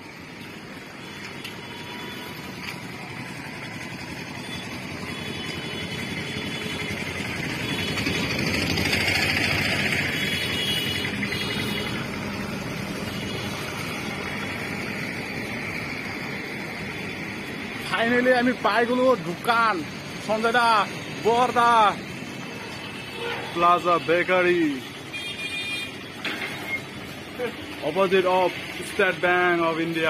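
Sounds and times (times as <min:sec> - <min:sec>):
vehicle engine running: 0:00.0 - 0:23.2.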